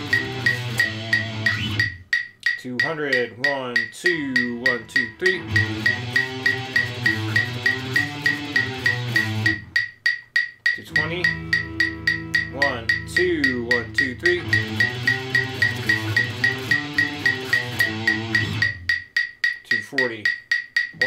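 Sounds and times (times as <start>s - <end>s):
electric guitar: 0.0s - 2.0s, 4.7s - 9.7s, 10.8s - 18.8s
metronome clicking: 0.0s - 21.0s.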